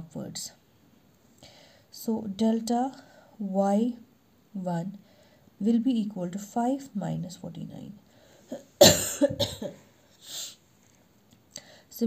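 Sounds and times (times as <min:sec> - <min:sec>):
person coughing: 0:08.5 - 0:10.6.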